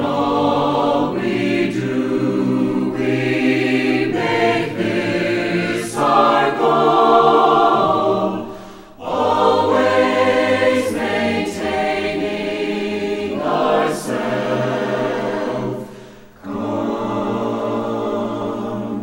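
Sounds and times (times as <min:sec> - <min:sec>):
choir singing held chords: 0:00.0 - 0:19.0.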